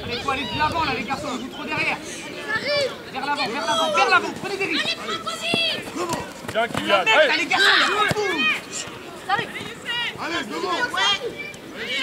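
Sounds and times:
people shouting: 0:02.5 - 0:12.0.

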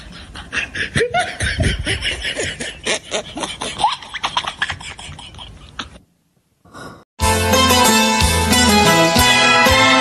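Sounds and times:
person laughing: 0:00.2 - 0:06.0.

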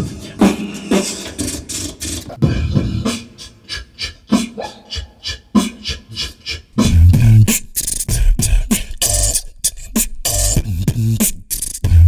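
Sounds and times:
beatboxing: 0:00.0 - 0:12.0.

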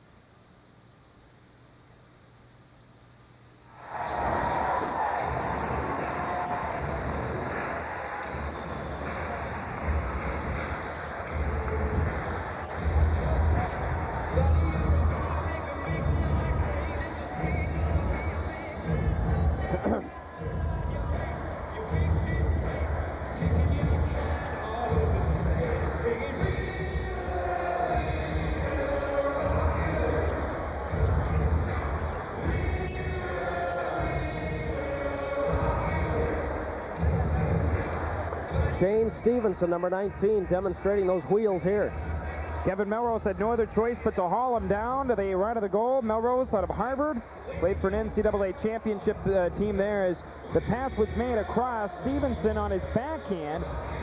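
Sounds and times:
arena crowd noise: 0:03.6 - 0:54.0
music over public address: 0:03.8 - 0:54.0.

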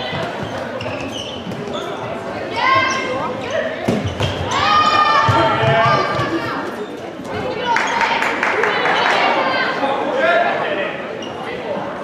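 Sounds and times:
players squealing: 0:00.0 - 0:08.1
ball bouncing on court floor: 0:03.8 - 0:06.4.

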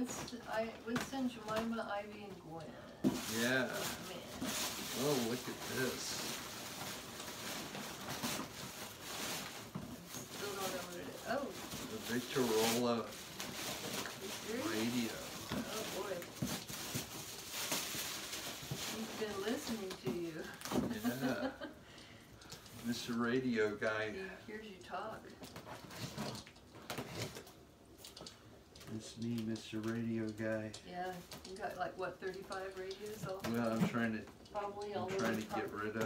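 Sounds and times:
gift bag rustling: 0:03.0 - 0:36.0.

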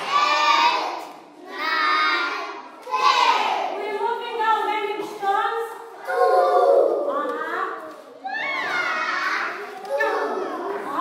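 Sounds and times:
children calling out: 0:06.0 - 0:07.3, 0:08.2 - 0:11.0.

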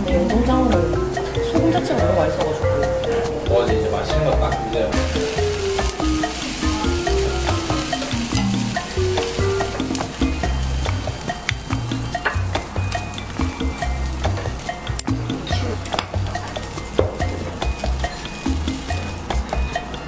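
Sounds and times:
background music: 0:00.0 - 0:20.0
fish sizzling on a grill: 0:04.8 - 0:20.0.

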